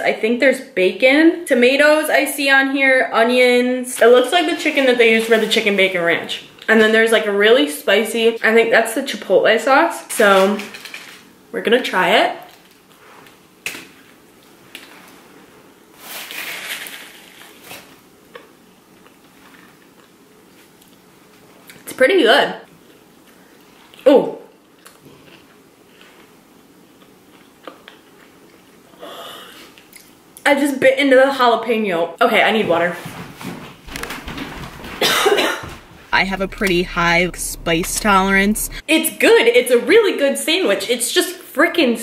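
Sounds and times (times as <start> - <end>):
person chewing sandwich: 17.8 - 21.8, 22.7 - 29.0
woman coughing: 35.0 - 35.7.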